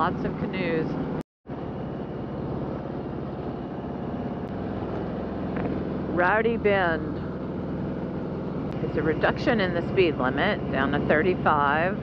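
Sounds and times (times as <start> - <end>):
motorcycle engine running: 0.0 - 12.0
road and wind noise: 0.0 - 12.0.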